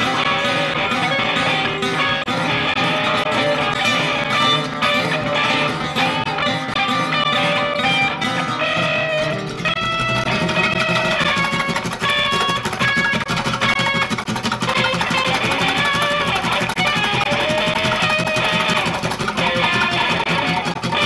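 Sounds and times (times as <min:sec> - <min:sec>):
guitars playing free jazz: 0:00.0 - 0:21.0.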